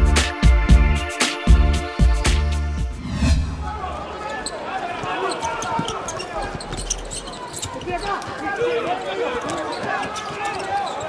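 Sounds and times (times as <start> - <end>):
crowd shouting and calling: 3.4 - 11.0.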